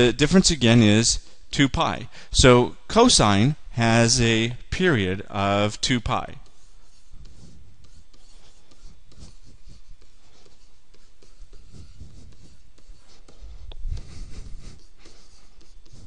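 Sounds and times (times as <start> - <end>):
stylus scratching on tablet screen: 5.2 - 16.0.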